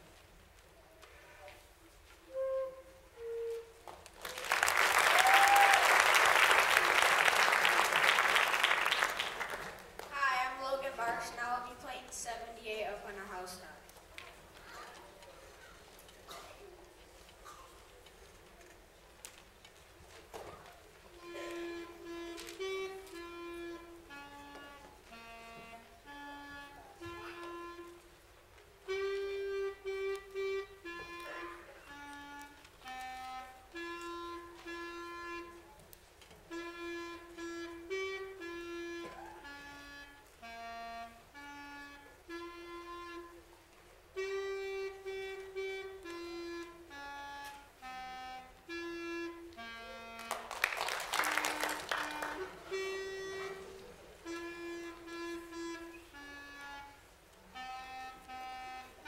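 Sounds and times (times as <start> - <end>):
wind instrument slow melody: 0.8 - 9.7, 20.0 - 59.0
clarinet playing slow held notes: 1.0 - 9.5, 21.1 - 28.2, 28.8 - 59.0.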